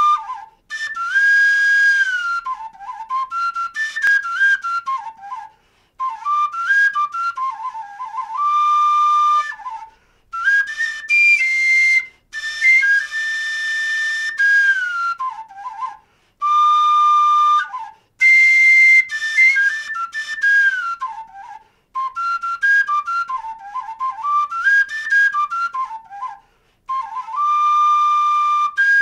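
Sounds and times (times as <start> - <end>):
flute playing slow melody: 0.0 - 29.0.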